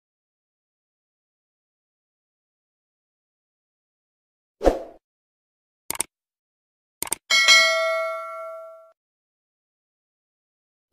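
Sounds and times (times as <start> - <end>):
bell ding: 7.3 - 9.0.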